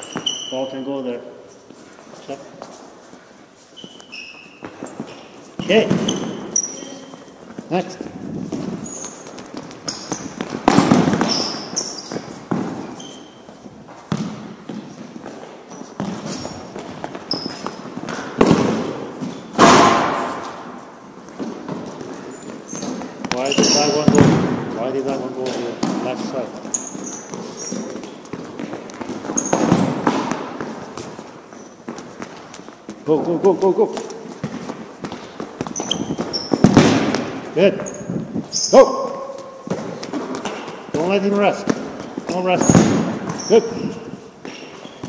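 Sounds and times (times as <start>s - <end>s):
ball striking floor and walls: 0.0s - 45.0s
sneakers squeaking on gym floor: 0.0s - 45.0s.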